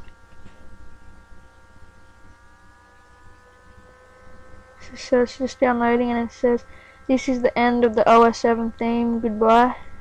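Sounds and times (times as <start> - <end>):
faint high whine: 0.0 - 10.0
steady low hum: 0.0 - 10.0.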